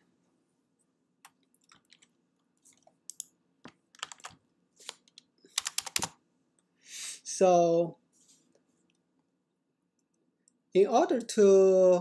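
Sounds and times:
computer keyboard typing: 1.2 - 2.1, 3.9 - 6.2.

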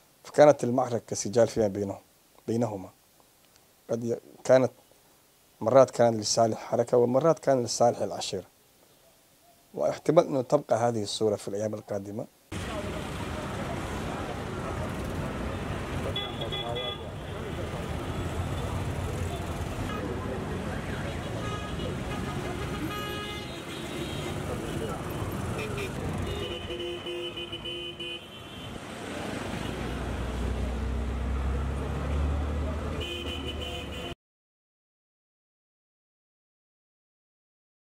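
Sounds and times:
vehicle engines running: 12.5 - 27.1, 28.8 - 33.0.

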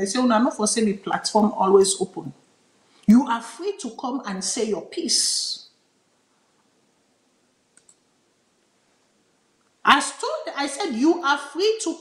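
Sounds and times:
faint clicks: 7.7 - 8.1.

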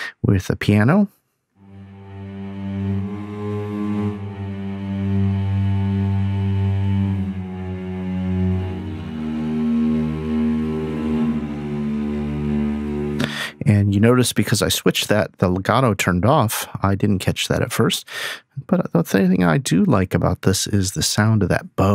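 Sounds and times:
cellos playing sustained notes: 1.6 - 14.2.

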